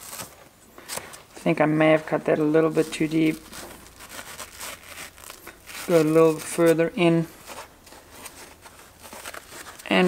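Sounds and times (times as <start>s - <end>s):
foam crinkling and rubbing: 0.0s - 10.0s
hot knife cutting foam: 3.0s - 9.6s.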